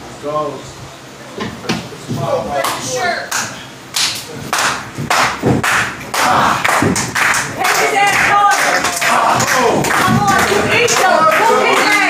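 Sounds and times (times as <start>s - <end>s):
sharp hand claps: 2.6s - 12.0s
dull thumps in wrestling ring: 5.0s - 5.9s, 9.3s - 10.8s.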